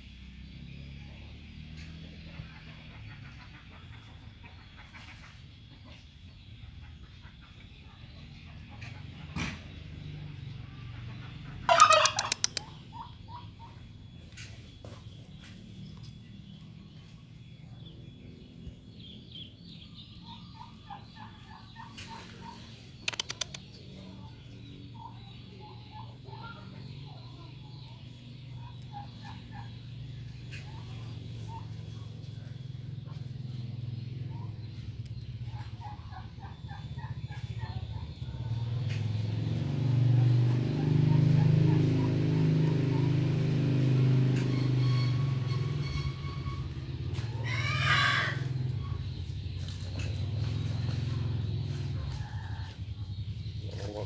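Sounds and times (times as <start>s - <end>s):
soft chirping calls: 0.2s - 54.0s
turkey gobbling: 11.2s - 13.8s, 35.4s - 38.4s.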